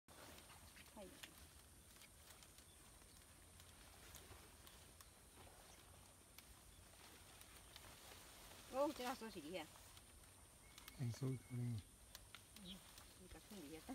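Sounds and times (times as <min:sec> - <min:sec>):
faint outdoor ambience: 0:00.1 - 0:13.9
faint clicks: 0:00.3 - 0:08.0, 0:08.9 - 0:13.9.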